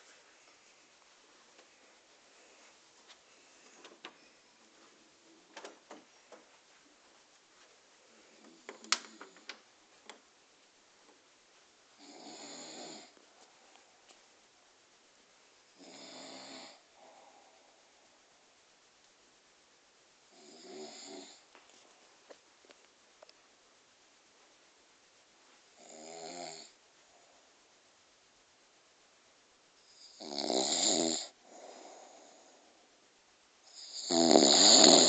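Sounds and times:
faint breath sound: 1.6s - 4.7s, 16.6s - 18.4s, 31.4s - 33.0s
person snoring: 12.0s - 13.2s, 15.8s - 17.6s, 20.3s - 21.4s, 29.9s - 32.6s, 33.7s - 35.0s
soft breath out: 17.0s - 18.0s.

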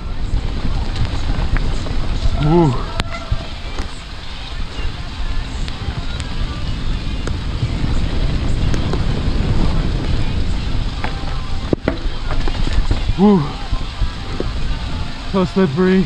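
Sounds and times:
bike rattling: 0.0s - 16.0s
tyres rolling on dirt: 0.0s - 16.0s
wind buffeting microphone: 0.0s - 16.0s.

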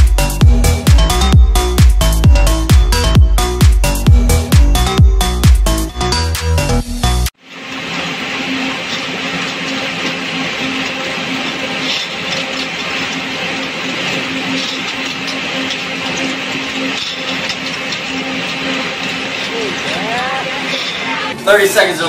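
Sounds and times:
spinning machine spindles whirring: 0.0s - 22.0s
bobbins clicking: 7.8s - 22.0s.

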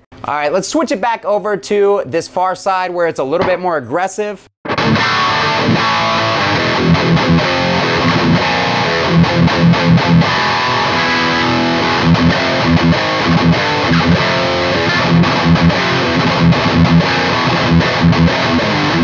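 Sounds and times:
distorted electric guitar riff: 4.6s - 19.0s.

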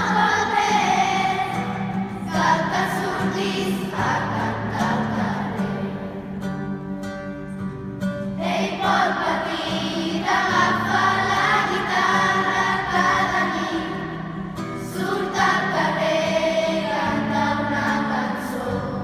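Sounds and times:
children's choir singing: 0.0s - 6.6s, 8.3s - 19.0s
acoustic guitar: 0.0s - 19.0s.

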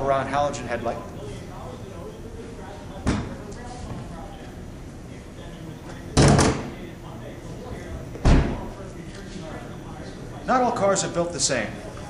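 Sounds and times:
car door slams: 8.2s - 8.6s.

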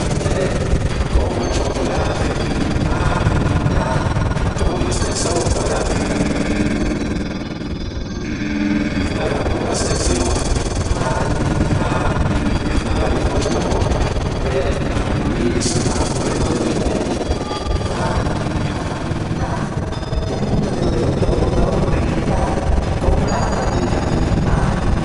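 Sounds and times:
harsh processed commercial music: 0.0s - 25.0s.

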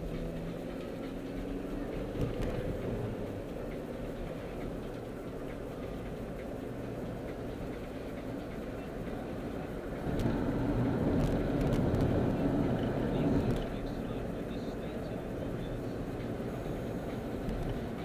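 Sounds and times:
car cabin road rumble: 0.0s - 18.0s.

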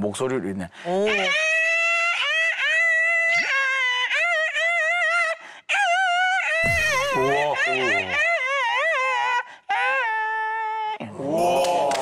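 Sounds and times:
man imitating a fiddle vocally: 6.6s - 8.4s.

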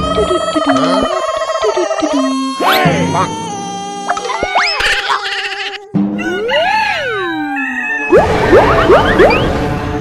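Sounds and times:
rising and falling sliding tone: 8.1s - 10.0s
noisy burst with rising zips: 8.2s - 10.0s.

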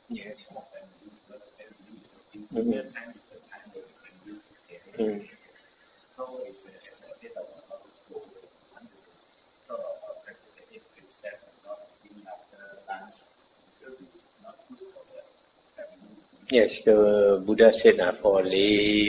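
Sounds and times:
distant person speaking: 0.0s - 9.0s, 13.8s - 19.0s
steady high-pitched tone: 0.0s - 19.0s.

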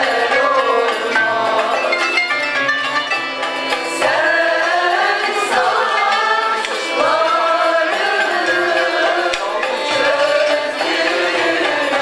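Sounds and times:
women's choir singing: 0.0s - 2.2s, 3.5s - 12.0s
oud: 0.0s - 12.0s
violin: 0.0s - 12.0s.

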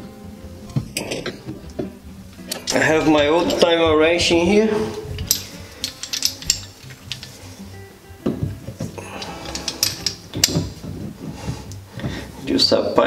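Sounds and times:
background music: 0.0s - 13.0s
wrench clicking and rattling: 2.4s - 3.7s, 5.1s - 7.5s, 9.1s - 10.8s.

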